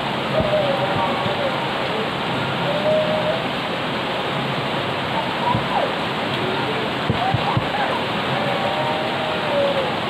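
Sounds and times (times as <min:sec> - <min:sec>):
heavy rain on pavement and plants: 0:00.0 - 0:10.0.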